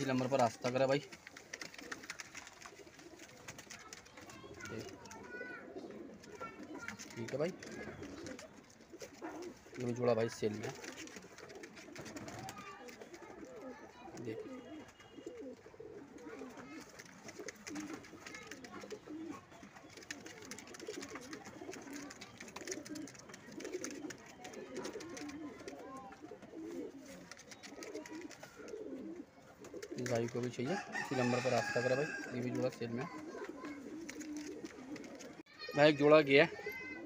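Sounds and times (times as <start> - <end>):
pigeons cooing: 0.0 - 37.0.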